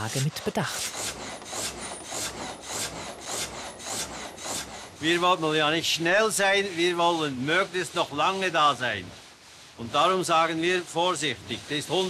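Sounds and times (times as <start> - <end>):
saw blade rasping through wood: 0.6 - 9.4, 10.3 - 12.0.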